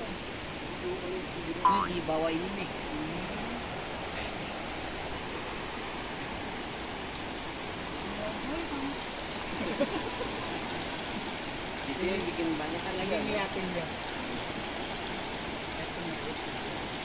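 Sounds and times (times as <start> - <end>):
fast-flowing river water rushing: 0.0 - 17.0.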